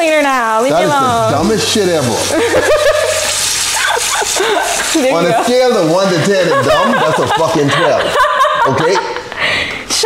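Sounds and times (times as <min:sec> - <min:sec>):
faucet running into metal sink: 0:00.0 - 0:08.9
person laughing: 0:02.2 - 0:09.4.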